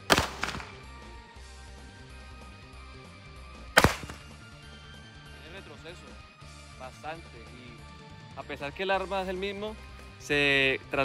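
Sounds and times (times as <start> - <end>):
pistol gunshots: 0.0 - 0.9, 3.8 - 4.4
background music: 0.0 - 11.0.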